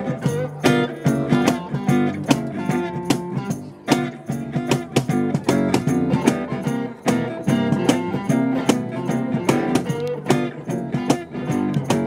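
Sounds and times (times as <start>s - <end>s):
bass: 0.0s - 12.0s
cajon beat: 0.0s - 12.0s
electric guitar: 0.0s - 12.0s
strummed acoustic guitars: 0.0s - 12.0s.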